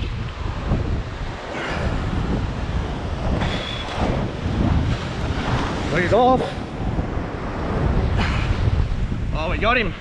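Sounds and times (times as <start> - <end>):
surf washing: 0.0 - 10.0
wind buffeting microphone: 0.0 - 10.0.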